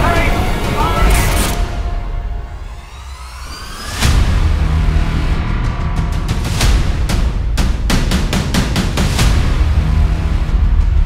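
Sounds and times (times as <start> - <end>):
orchestral trailer music: 0.0 - 11.0.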